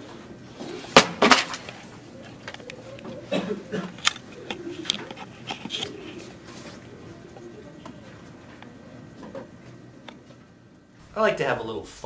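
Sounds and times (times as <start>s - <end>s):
faint murmuring voices: 2.0s - 10.1s.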